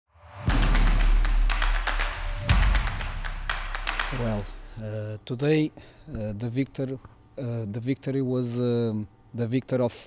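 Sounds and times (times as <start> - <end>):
intro music with heavy percussion: 0.2 - 4.7.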